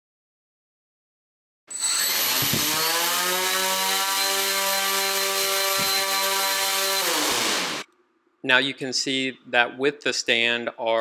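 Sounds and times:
drone motors whining: 1.7 - 7.8.

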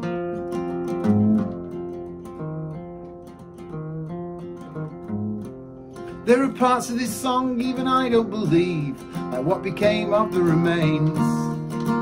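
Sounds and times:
acoustic guitar playing chords: 0.0 - 12.0.

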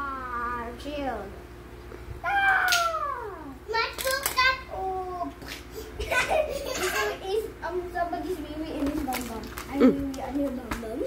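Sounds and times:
young child crying and wailing: 2.2 - 3.6.

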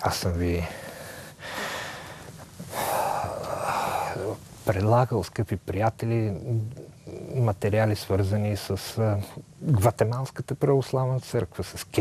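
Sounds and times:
man breathing close to microphone: 0.7 - 4.4.

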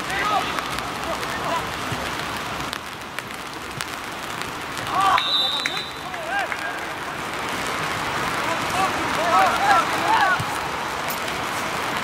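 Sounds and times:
open-air hiss: 0.0 - 12.0.

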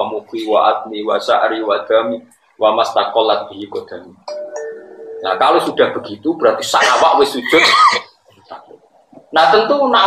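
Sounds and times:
man speaking: 0.0 - 4.2, 5.2 - 10.0
two-note doorbell chime: 4.3 - 5.4.

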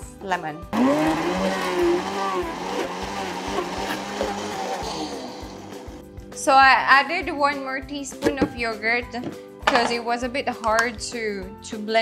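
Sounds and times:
blender running: 0.8 - 6.0.

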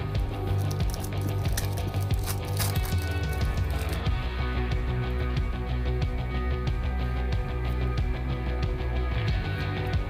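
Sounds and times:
background music: 0.0 - 10.0
foil pack crinkling and tearing: 0.4 - 4.2.

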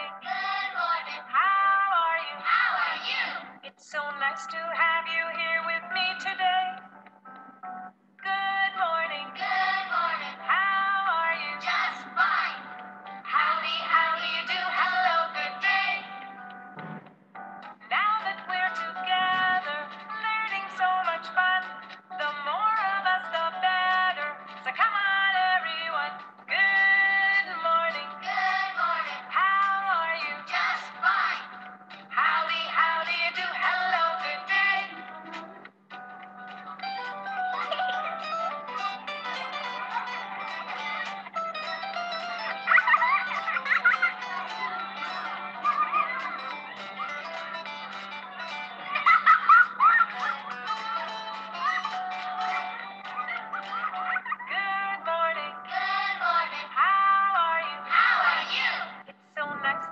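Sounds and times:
children's song vocals: 0.0 - 6.9, 8.2 - 16.4, 17.9 - 35.7, 37.4 - 59.9
light music backing: 0.0 - 59.9
backing track: 26.1 - 54.3.

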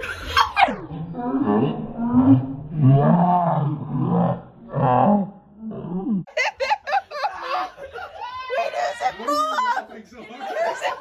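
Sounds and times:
high-pitched laughter: 0.0 - 1.0, 6.3 - 11.0
deep hearty laughter: 6.3 - 8.3, 10.3 - 11.0
chatter: 7.1 - 11.0.

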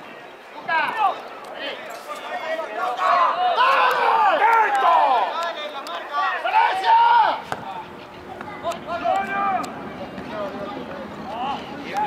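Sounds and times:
several voices shouting: 2.8 - 5.3, 6.2 - 12.0.

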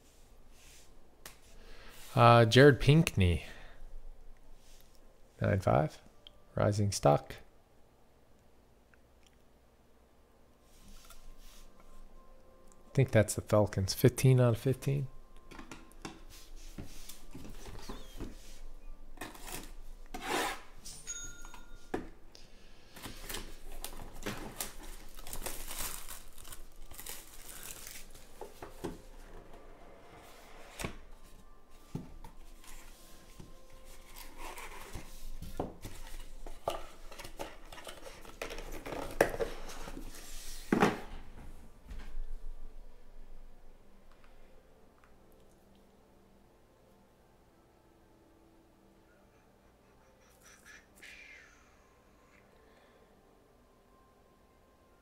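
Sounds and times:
cardboard and plastic rustling: 22.9 - 29.4, 31.0 - 41.3.

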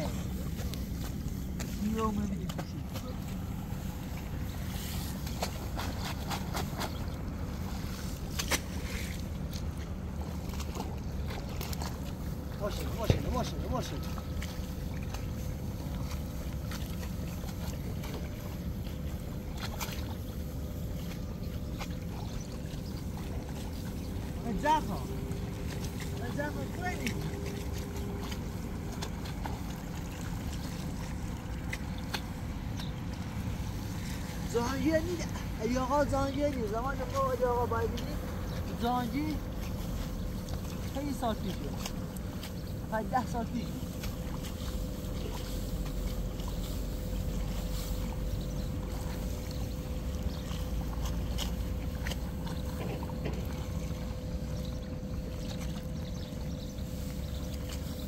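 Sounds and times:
water and mud splashing: 0.0 - 58.0.

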